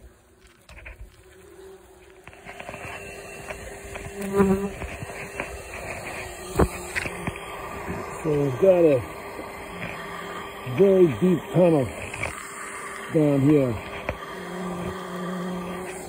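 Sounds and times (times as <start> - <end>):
bumblebees buzzing: 0.0 - 16.0.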